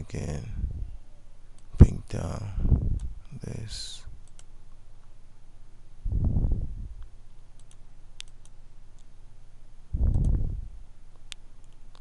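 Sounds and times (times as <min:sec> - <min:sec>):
low electrical hum: 0:00.0 - 0:12.0
computer mouse clicking: 0:04.2 - 0:04.5, 0:07.6 - 0:09.1, 0:11.1 - 0:12.0
muffled low thump: 0:06.1 - 0:07.0, 0:10.0 - 0:10.8.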